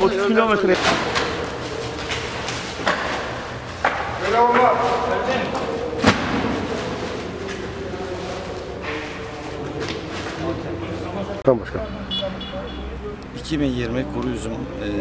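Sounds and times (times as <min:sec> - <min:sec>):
heavy sacks thudding: 0:04.7 - 0:07.5.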